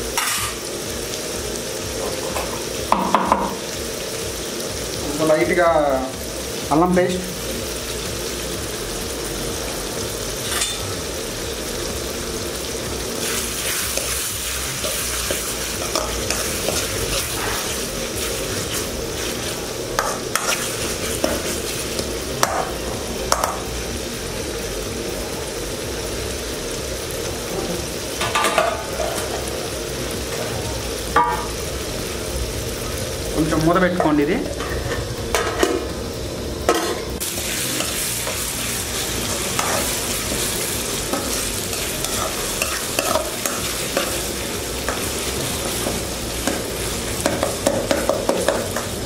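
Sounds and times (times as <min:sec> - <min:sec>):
masala sizzling in oil: 0:00.0 - 0:49.0.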